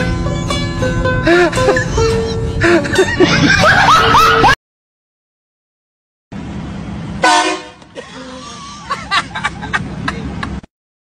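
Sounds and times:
car horn honk: 7.2 - 8.0.

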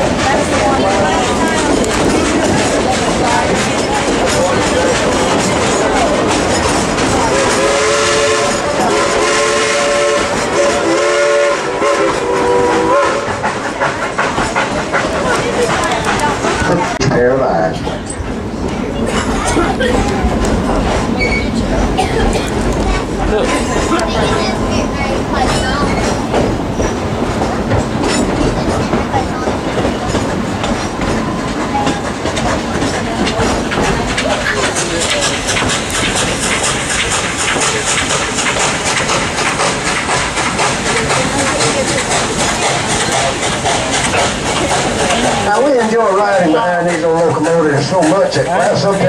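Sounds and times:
train wheels clattering on rails: 0.0 - 49.0
quick regular pulsing: 19.4 - 49.0.

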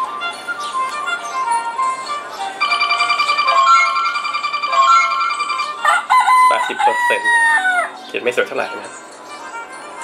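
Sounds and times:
rooster crow from small speaker: 5.8 - 7.9.

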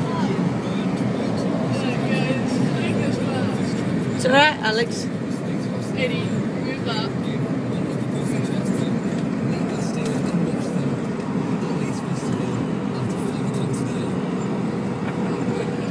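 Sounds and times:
car cabin road and engine drone: 0.0 - 15.9.

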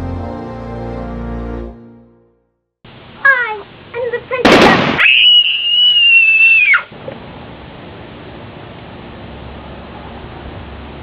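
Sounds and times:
girl exclaiming: 3.2 - 6.9
girl screaming shrilly: 4.5 - 6.9.

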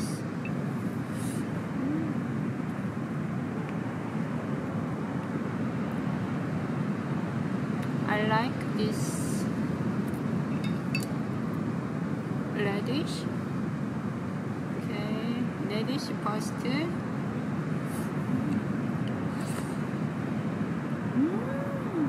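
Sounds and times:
low background noise: 0.0 - 22.0.

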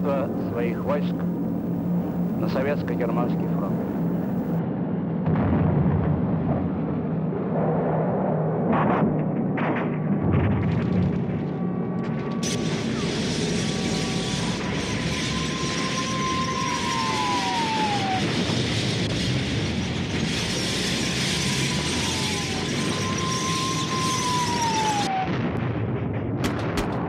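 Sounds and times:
aircraft engine rushing: 0.0 - 4.6, 12.2 - 25.2
plane passing with high whine: 0.0 - 4.8, 11.7 - 25.2.

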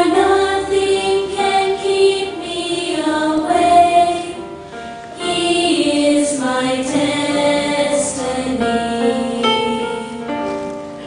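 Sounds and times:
group of voices singing: 0.0 - 10.4
music: 0.0 - 11.0.

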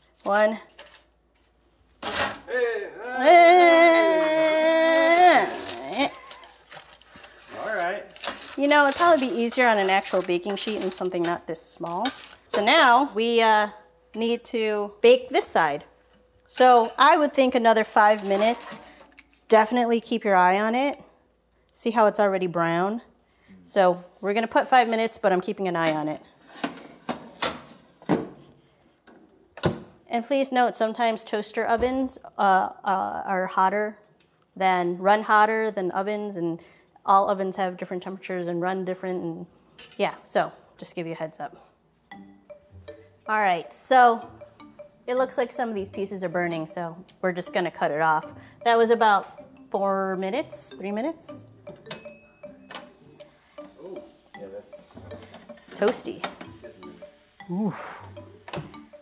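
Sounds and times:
timer bell ding: 47.4 - 59.0.

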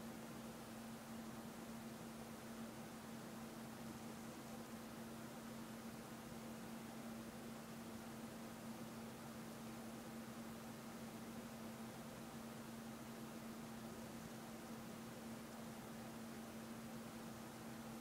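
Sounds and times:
faint steady hiss: 0.0 - 18.0.

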